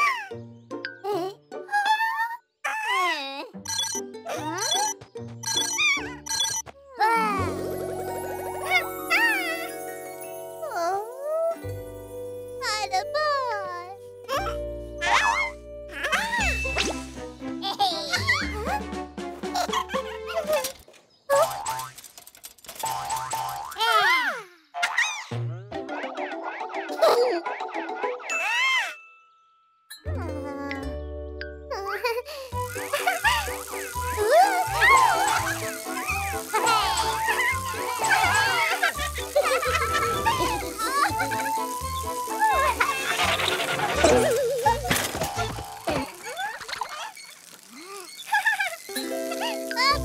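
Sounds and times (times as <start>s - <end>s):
jingly background music: 2.9s - 20.8s, 25.3s - 46.0s, 48.9s - 50.0s.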